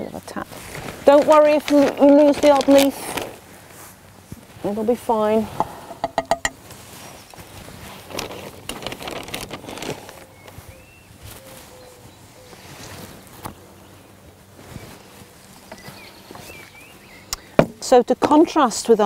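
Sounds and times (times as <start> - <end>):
rustling and scuffing of plants: 0.0 - 5.9, 6.5 - 19.0.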